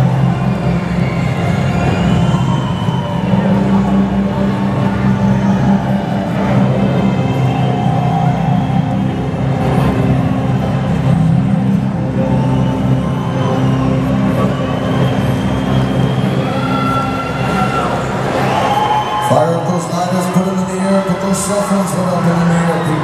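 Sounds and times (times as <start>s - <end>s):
dark droning concert music: 0.0s - 23.0s
faint crowd noise: 0.0s - 23.0s.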